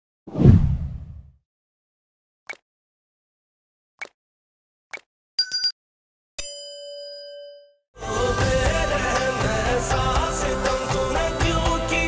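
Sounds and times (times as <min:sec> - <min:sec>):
deep whoosh: 0:00.3 - 0:01.3.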